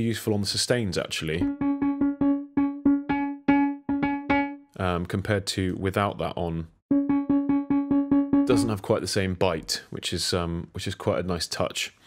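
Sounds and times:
electric piano note struck repeatedly: 0:01.4 - 0:04.6, 0:06.9 - 0:08.8.

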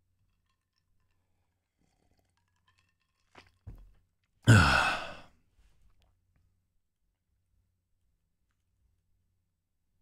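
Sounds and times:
loud breathy sigh: 0:04.5 - 0:05.3
man swallowing: 0:04.5 - 0:05.3.

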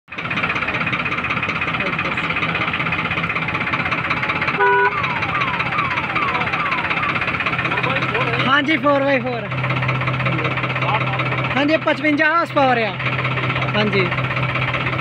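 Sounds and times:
tractor diesel engine running: 0:00.1 - 0:15.0
short falling tones: 0:03.9 - 0:07.8.

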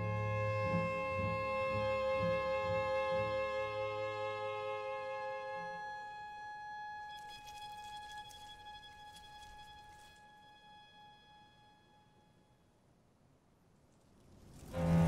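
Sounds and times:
sustained music chord: 0:14.8 - 0:15.0.

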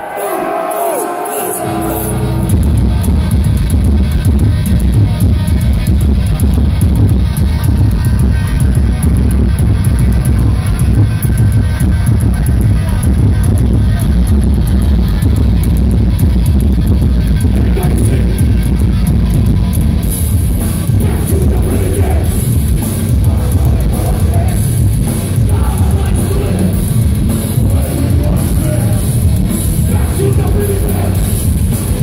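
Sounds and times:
heavy metal band playing live: 0:00.4 - 0:32.0
drum and cymbal hits: 0:01.5 - 0:32.0.

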